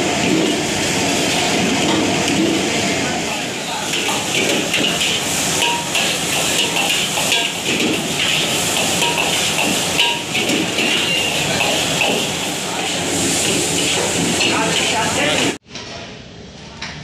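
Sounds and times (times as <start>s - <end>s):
food sizzling in a wok: 0.0s - 15.6s
metal ladle scraping a wok: 3.6s - 15.6s.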